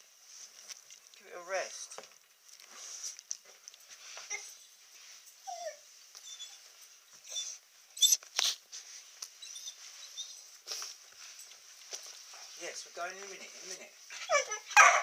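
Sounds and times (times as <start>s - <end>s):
dog whining: 4.2s - 4.7s, 5.4s - 8.6s, 9.4s - 10.5s, 14.1s - 15.0s.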